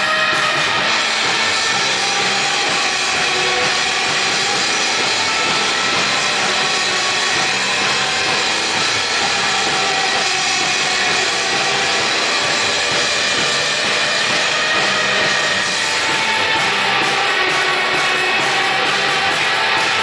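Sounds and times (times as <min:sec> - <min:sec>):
surf rock band playing: 0:00.0 - 0:20.0.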